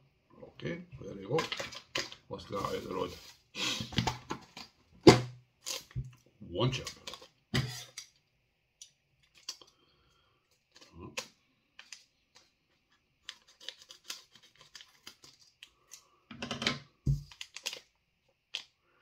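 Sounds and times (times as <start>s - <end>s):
scissors snipping a crinkly packet: 13.2s - 16.1s, 17.2s - 17.9s.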